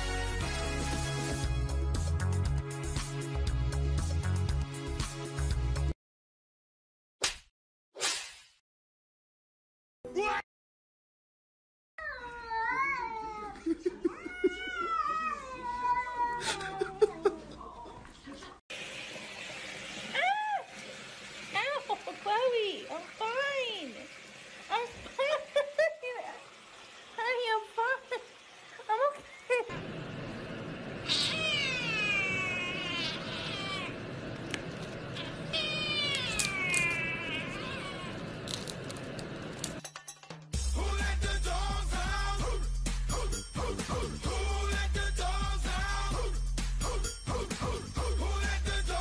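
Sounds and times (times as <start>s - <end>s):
cat crying: 12.0s - 17.2s, 31.0s - 34.1s, 35.2s - 38.4s.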